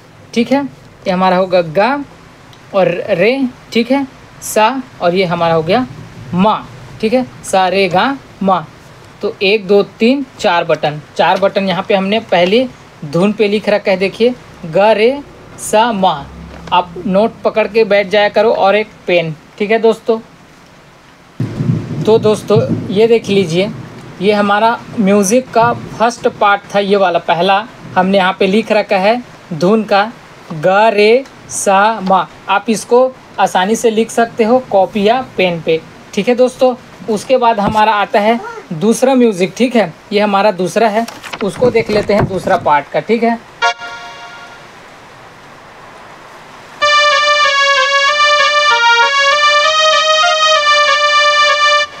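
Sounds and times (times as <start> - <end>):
faint hiss: 0.0 - 47.4
low rumbling noise: 1.0 - 9.4, 11.9 - 28.5
electronic keyboard note: 43.6 - 44.8, 46.8 - 52.0.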